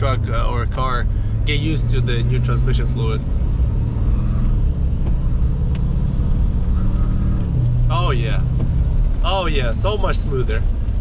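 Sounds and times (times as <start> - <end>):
diesel engine accelerating: 0.0 - 11.0.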